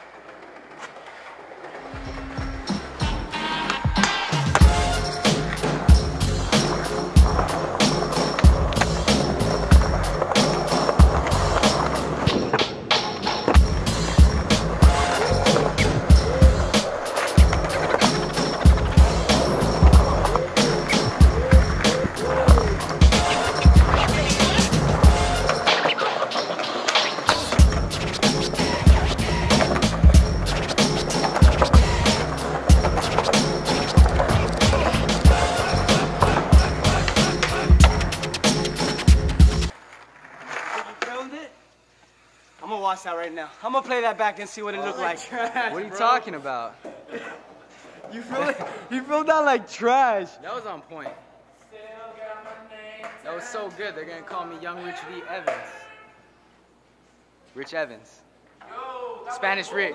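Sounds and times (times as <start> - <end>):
skateboard wheels rolling on concrete: 0.0 - 41.4
background music with beat: 1.9 - 39.7
skateboard flip trick: 10.2 - 35.2, 39.7 - 41.2.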